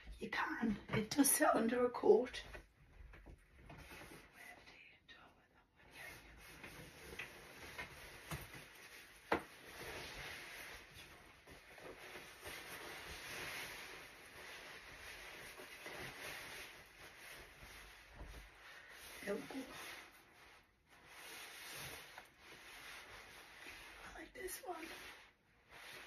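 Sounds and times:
fabric rustling: 6.0 - 26.0.

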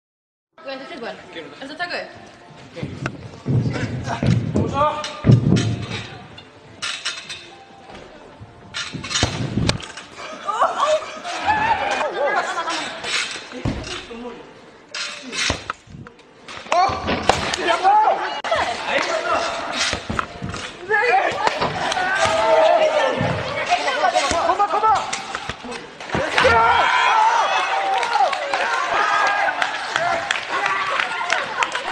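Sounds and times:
people shouting and shrieking: 10.2 - 13.0, 20.8 - 31.6.

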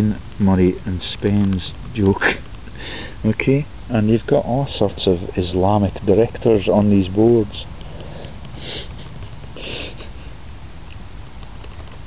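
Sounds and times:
low background rumble: 0.0 - 12.0
person sniffing: 2.7 - 3.2, 7.9 - 10.4.

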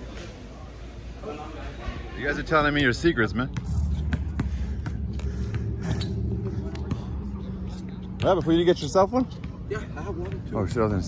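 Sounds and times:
low steady rumble: 2.8 - 11.0
basketball bouncing: 3.5 - 7.4.

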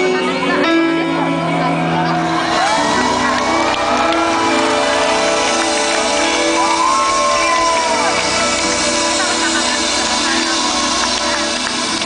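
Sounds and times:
crowd shouting and cheering: 0.0 - 12.0
live pop band playing: 0.0 - 12.0.

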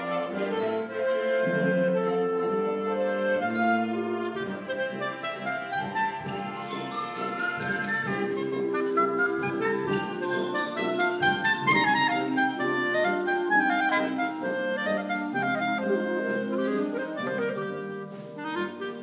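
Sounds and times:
clarinets melody: 0.0 - 19.0
concert band playing: 0.0 - 19.0.

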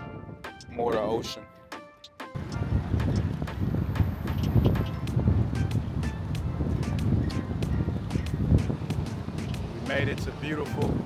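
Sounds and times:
wind buffeting microphone: 0.0 - 1.3, 2.4 - 11.0
background music: 0.0 - 11.0.

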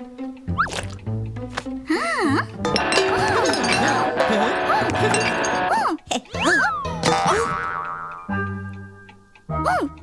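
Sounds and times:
ringing tones: 2.6 - 5.8
springy cartoon boings: 6.3 - 8.6.

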